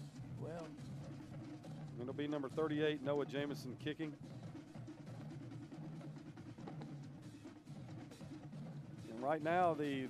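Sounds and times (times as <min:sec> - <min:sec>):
snare and bass drums: 0:00.0 - 0:10.0.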